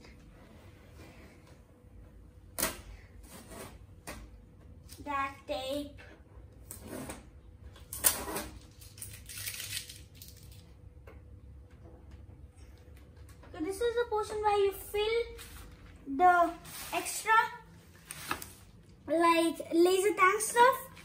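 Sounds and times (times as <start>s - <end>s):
packing tape ripping: 7.9s - 10.6s.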